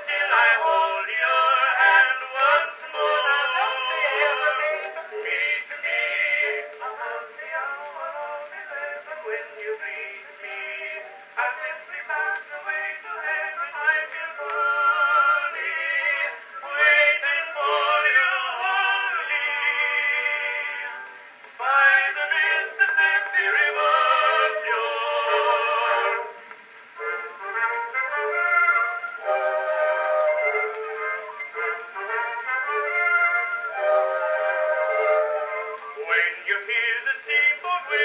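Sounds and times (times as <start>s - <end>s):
old phonograph recording of song: 0.0s - 38.0s.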